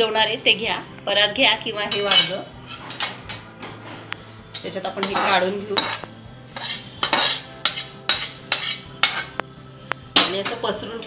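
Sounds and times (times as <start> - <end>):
spoon scraping a pan: 1.8 - 9.5.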